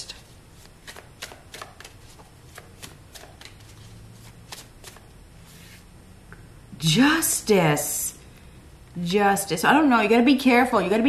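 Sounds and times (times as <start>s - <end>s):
cards being shuffled: 0.1s - 5.8s.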